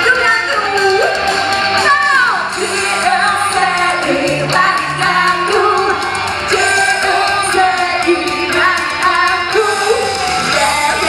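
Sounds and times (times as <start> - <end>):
electric guitars: 0.0 - 11.0
steady drum beat: 0.0 - 11.0
woman singing: 0.0 - 11.0.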